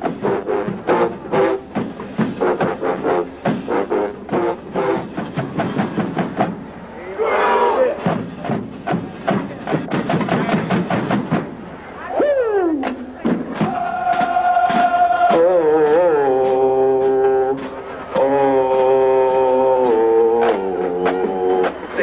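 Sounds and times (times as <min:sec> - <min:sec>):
marching drumline cadence: 0:00.0 - 0:22.0.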